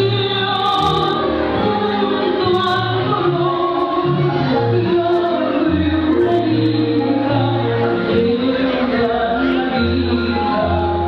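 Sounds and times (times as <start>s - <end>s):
tango waltz music with singing: 0.0s - 11.0s.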